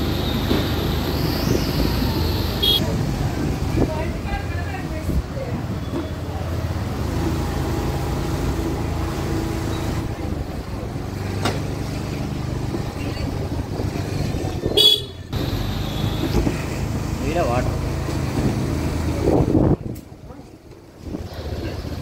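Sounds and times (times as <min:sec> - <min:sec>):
motorbike engines rumbling: 0:00.0 - 0:22.0
horn honk: 0:02.6 - 0:02.8, 0:14.7 - 0:16.5.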